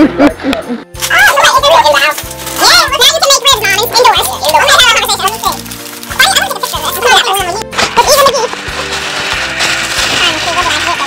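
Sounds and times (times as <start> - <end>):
background music: 0.0 - 11.0
wrapping paper crinkling: 1.0 - 11.0.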